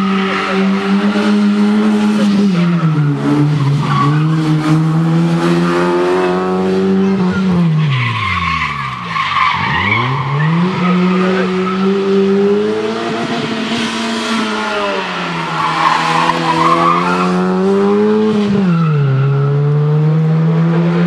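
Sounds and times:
rally car engine revving: 0.0 - 21.0.

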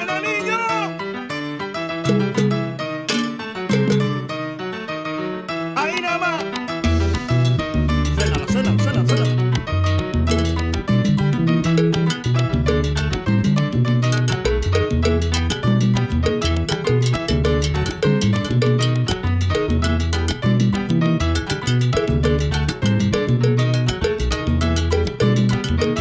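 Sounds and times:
salsa band playing: 1.9 - 4.6, 5.8 - 26.0.

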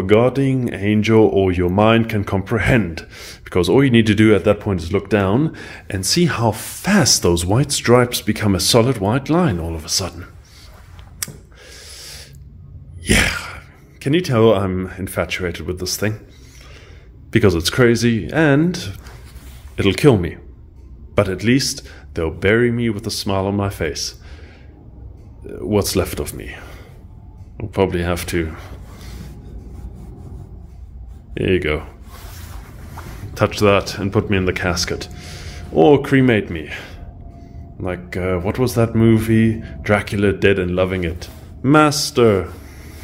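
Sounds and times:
faint steady hum: 0.0 - 43.0
breathy exhale: 3.1 - 3.4, 5.6 - 5.9, 11.5 - 13.8, 16.3 - 17.2, 24.2 - 25.3, 28.5 - 30.3, 35.1 - 35.7
rubbing and handling noise: 18.8 - 20.1, 28.3 - 35.7.

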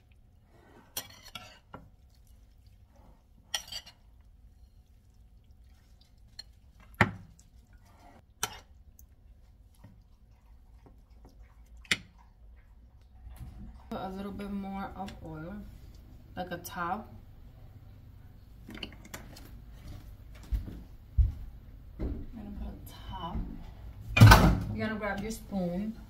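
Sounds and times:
metal utensils clinking against bowl: 3.5 - 4.0.

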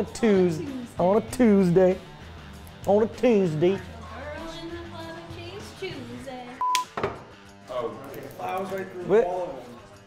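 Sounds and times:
background music: 0.0 - 10.0
electronic beep: 6.6 - 6.9.

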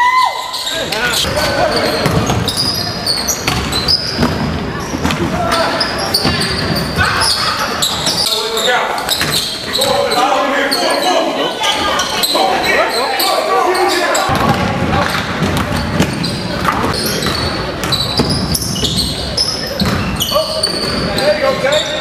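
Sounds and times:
indistinct voices: 0.0 - 22.0
basketball dribbled on gym floor: 3.4 - 5.2, 19.7 - 21.0.

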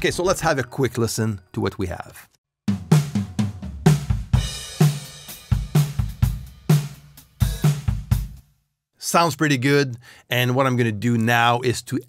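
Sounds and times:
kick and snare drum beat: 2.7 - 8.4
hi-hat and cymbals ringing: 4.4 - 8.3.

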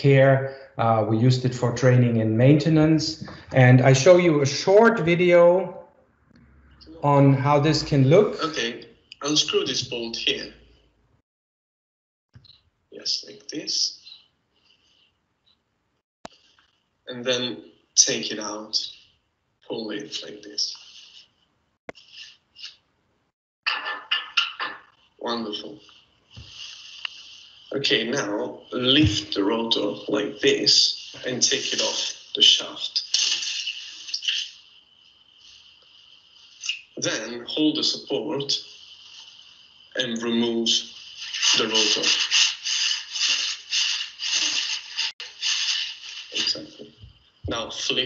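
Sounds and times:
scraping and rubbing by hand: 24.8 - 37.3, 38.4 - 47.0.

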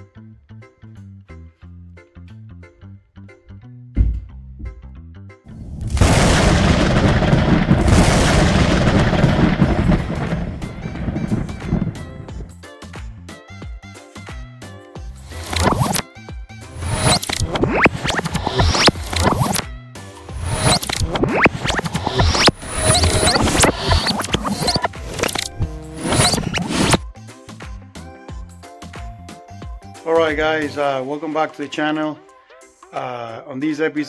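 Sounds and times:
low thuds: 4.0 - 4.9, 5.5 - 12.5
boom with rumbling hissing wash: 5.6 - 12.5
stuttering clicks: 5.9 - 12.4, 15.3 - 16.0, 16.8 - 19.6, 20.3 - 27.0.

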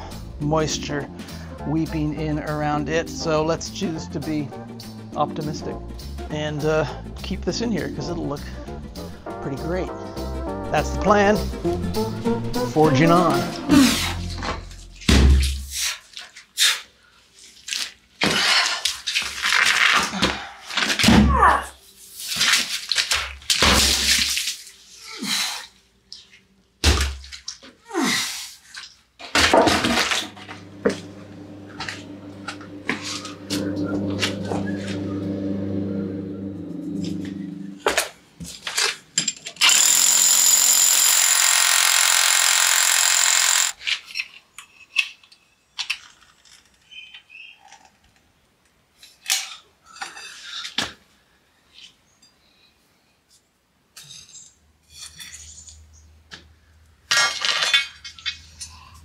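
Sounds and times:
steady machine hum: 30.3 - 37.8, 39.7 - 43.8
hammer drill boring into stone: 39.6 - 43.8.

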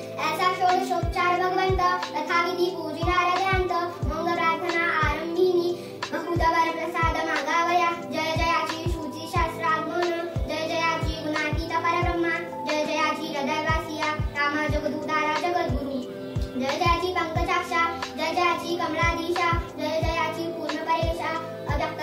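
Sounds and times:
girl chanting sing-song: 0.0 - 22.0.

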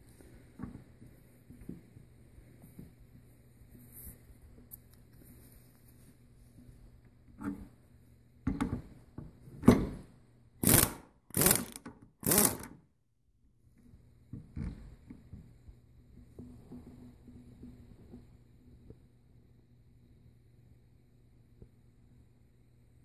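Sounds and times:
mechanical noise at bench vise: 7.2 - 12.9.

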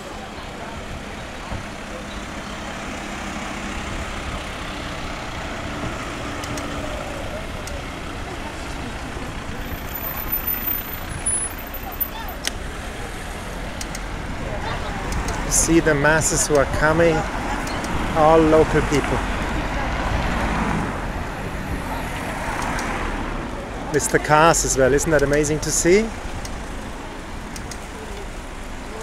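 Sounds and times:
cars driving slowly past: 0.0 - 29.0
road noise: 0.0 - 29.0
people talking: 6.8 - 10.2, 14.4 - 20.2, 23.5 - 26.2.

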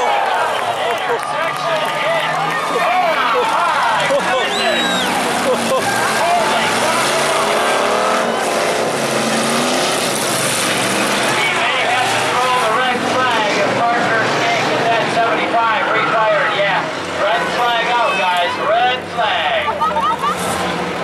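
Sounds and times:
people's voices: 0.0 - 21.0
race car engines revving: 0.0 - 21.0.

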